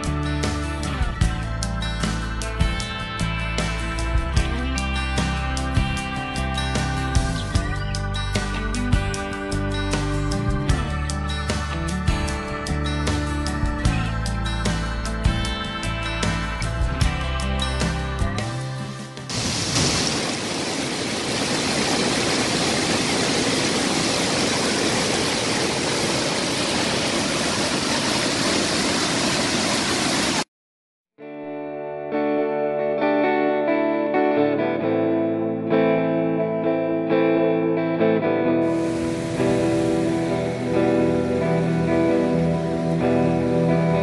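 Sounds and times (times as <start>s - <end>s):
guitar background music: 0.0s - 19.5s, 31.2s - 44.0s
waterfall rushing: 19.3s - 30.5s, 38.6s - 44.0s.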